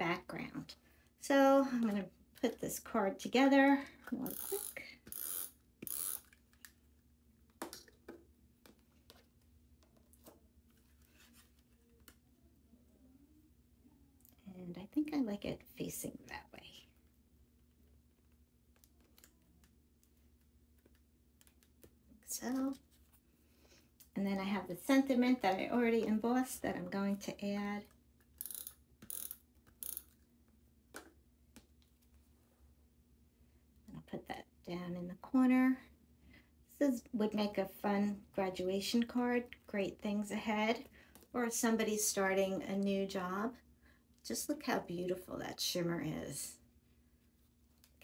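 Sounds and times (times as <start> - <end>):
tape runner ratcheting: 4.2 - 6.4, 28.4 - 30.2.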